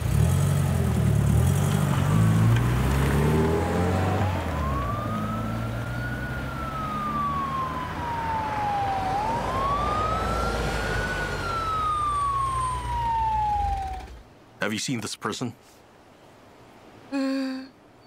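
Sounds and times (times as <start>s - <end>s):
car engine rumble: 0.0s - 14.6s
emergency siren wailing: 3.2s - 14.4s.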